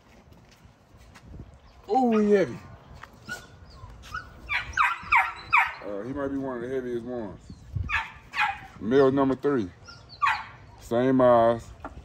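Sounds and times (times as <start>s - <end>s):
puppies crying and yipping: 1.9s - 6.0s, 7.6s - 10.8s.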